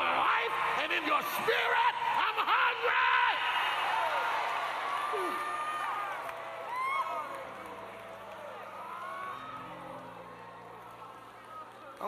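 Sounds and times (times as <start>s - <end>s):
congregation praying and calling out: 0.0s - 3.6s.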